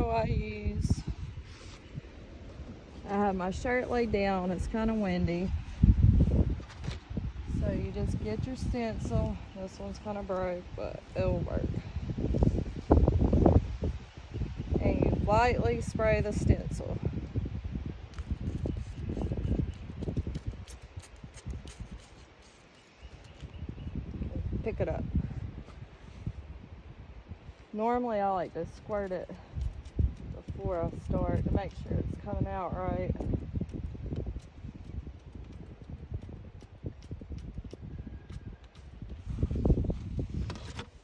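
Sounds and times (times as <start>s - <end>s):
wind gusting on microphone: 0.0s - 41.0s.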